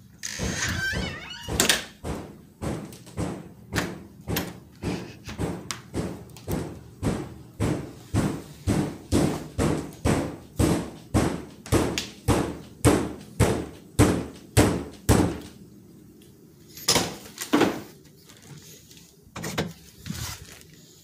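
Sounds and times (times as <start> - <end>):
heavy regular thumps: 0.4 - 15.4.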